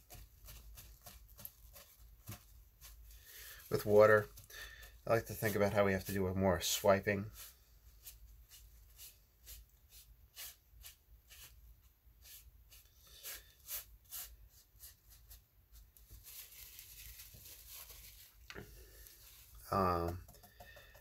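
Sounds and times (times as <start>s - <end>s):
brush strokes on damp paper: 0.0s - 20.2s.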